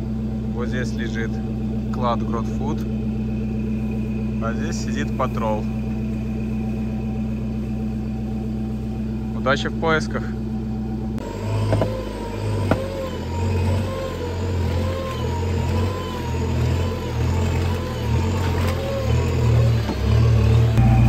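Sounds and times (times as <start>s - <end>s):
diesel engine revving: 0.0s - 21.0s.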